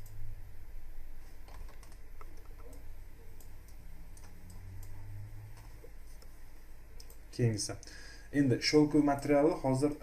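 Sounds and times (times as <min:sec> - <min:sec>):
low steady hum: 0:00.0 - 0:10.0
keyboard and mouse clicks: 0:01.4 - 0:02.8, 0:03.4 - 0:06.3.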